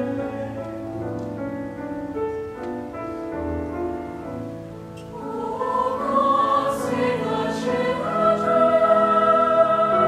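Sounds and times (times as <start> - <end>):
choir singing: 0.0 - 0.8, 5.0 - 10.0
piano accompaniment: 0.0 - 10.0.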